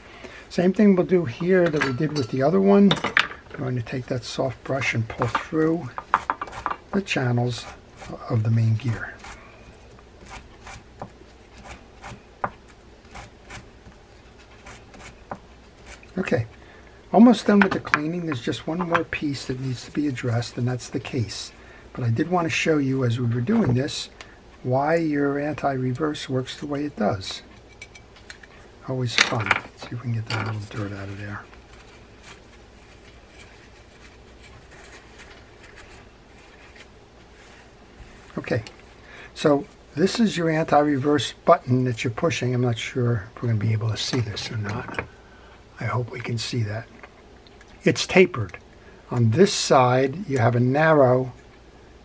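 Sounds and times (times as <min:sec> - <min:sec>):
paper towel rustling and scratching: 0:30.6 - 0:41.1.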